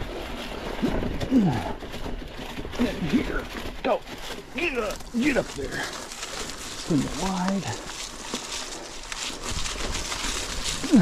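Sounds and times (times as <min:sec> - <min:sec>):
bike tyres rolling on dry leaves: 0:00.0 - 0:11.0.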